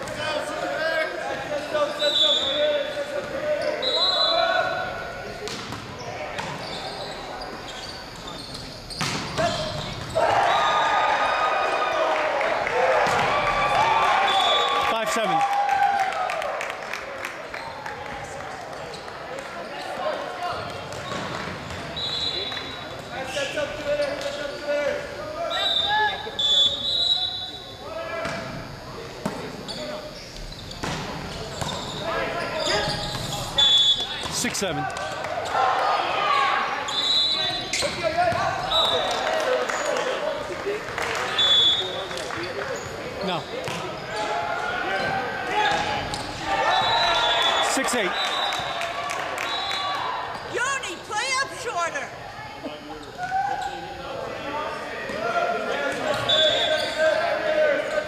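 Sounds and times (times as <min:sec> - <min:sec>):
sneaker squeaks: 0:01.8 - 0:04.6, 0:05.5 - 0:10.8, 0:18.8 - 0:24.8, 0:25.5 - 0:27.6, 0:28.2 - 0:34.6, 0:36.7 - 0:39.2, 0:41.2 - 0:51.4, 0:52.8 - 0:54.0, 0:56.0 - 0:58.0
volleyball contacts and thuds: 0:08.9 - 0:10.2, 0:12.9 - 0:13.5, 0:30.7 - 0:31.9
players shouting: 0:09.4 - 0:16.7.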